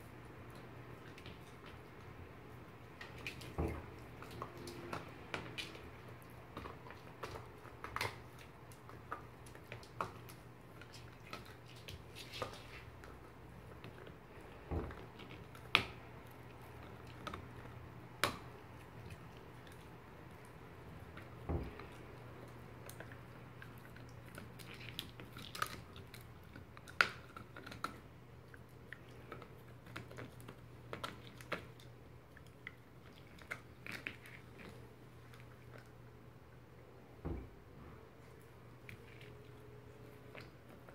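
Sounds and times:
dog gnawing a chew toy: 0:00.0 - 0:37.2, 0:38.1 - 0:40.9.

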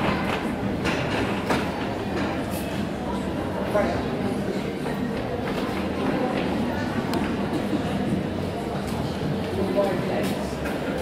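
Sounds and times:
rumbling arena background noise: 0:00.0 - 0:11.0.

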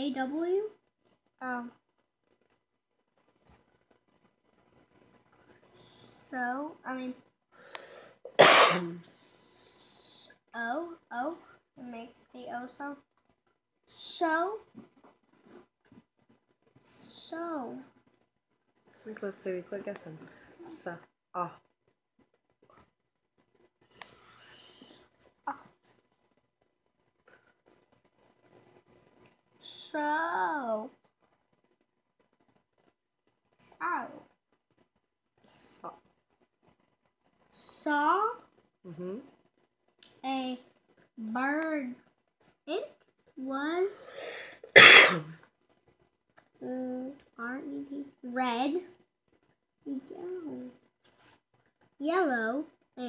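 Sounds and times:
drawn-out hiss: 0:05.3 - 0:10.3, 0:23.6 - 0:25.6, 0:43.8 - 0:45.5
person coughing loudly: 0:08.3 - 0:08.9, 0:44.7 - 0:45.3
short voiced sound: 0:44.8 - 0:45.3.

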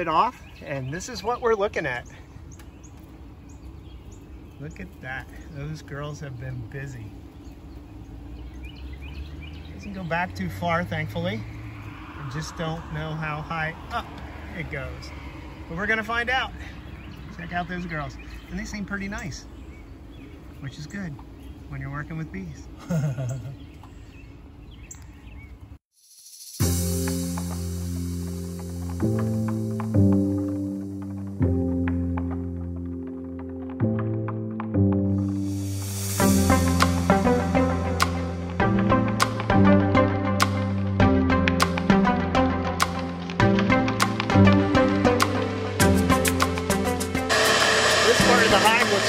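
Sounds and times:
man talking: 0:00.0 - 0:02.2, 0:04.6 - 0:07.2, 0:09.8 - 0:11.5, 0:12.2 - 0:19.5, 0:20.6 - 0:22.8, 0:47.9 - 0:49.0
honeybees humming: 0:00.0 - 0:24.9, 0:26.7 - 0:49.0
person laughing: 0:22.8 - 0:23.7
music with sustained notes: 0:26.6 - 0:49.0
vacuum motor rushing: 0:47.2 - 0:49.0.

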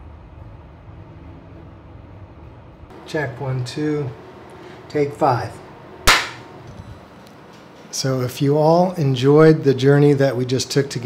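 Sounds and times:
hand slap: 0:06.1 - 0:06.4.

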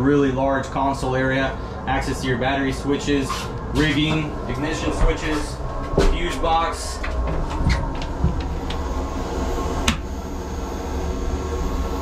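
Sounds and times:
low machinery hum: 0:00.0 - 0:12.0.

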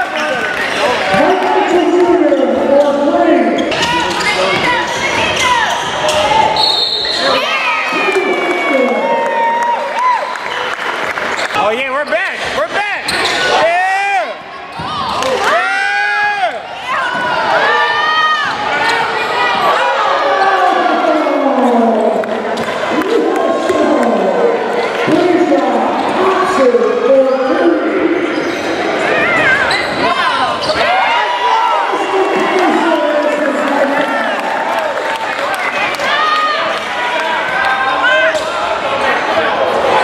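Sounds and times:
players' voices: 0:00.0 - 0:10.2, 0:11.1 - 0:40.0
sneakers squeaking on court: 0:03.5 - 0:07.4, 0:13.0 - 0:13.5, 0:28.0 - 0:30.8.

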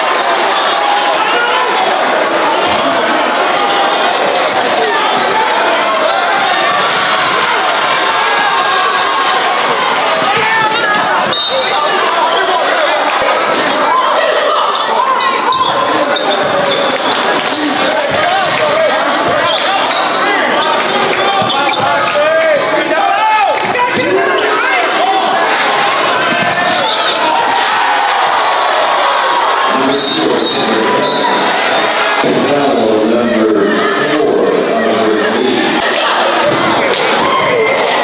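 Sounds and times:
overlapping voices: 0:00.0 - 0:38.0.

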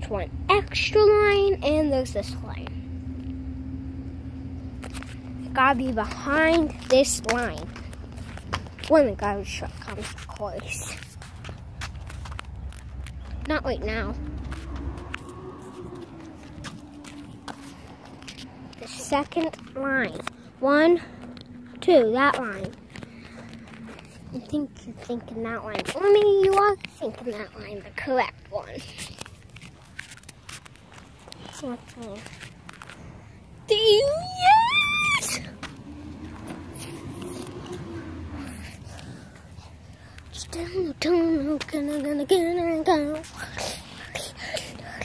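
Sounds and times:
low steady rumble: 0:00.0 - 0:45.0
footsteps on concrete: 0:05.9 - 0:27.0.

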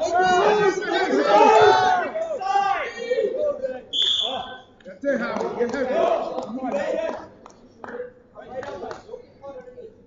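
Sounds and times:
people shouting in a gym: 0:00.0 - 0:04.6
referee's whistle blast: 0:03.9 - 0:04.7.

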